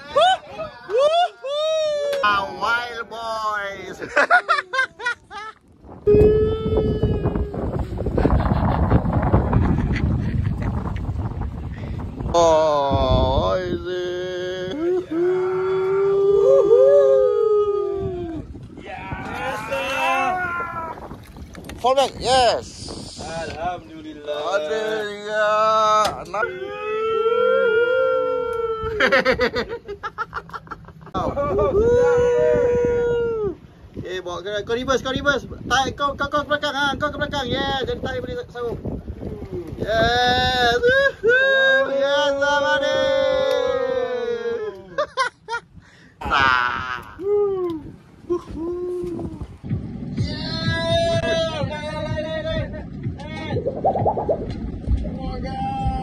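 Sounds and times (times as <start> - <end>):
men hooting and whooping: 0.0 - 8.6, 14.2 - 21.2, 26.4 - 29.3, 31.2 - 33.7, 39.6 - 45.3, 46.2 - 49.6
wind buffeting microphone: 0.0 - 56.0
low rumble: 52.3 - 56.0
water splashing: 53.6 - 54.8.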